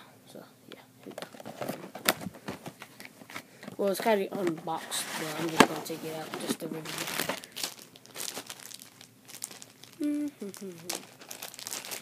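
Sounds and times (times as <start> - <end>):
packaging crinkling and rustling: 1.0 - 12.0.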